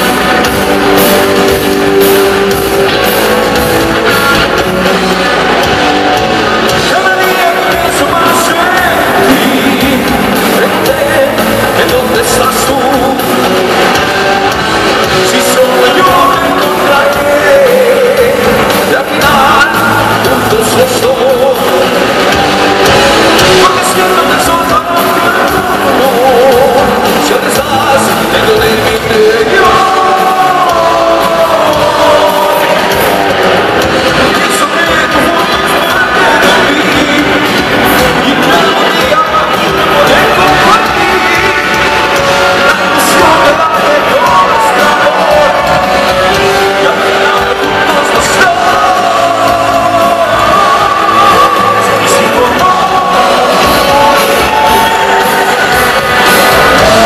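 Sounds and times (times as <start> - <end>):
heavy metal band playing: 0.0 - 57.0.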